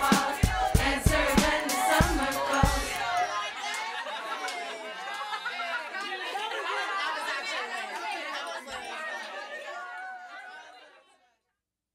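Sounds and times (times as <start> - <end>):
people chattering: 0.0 - 11.2.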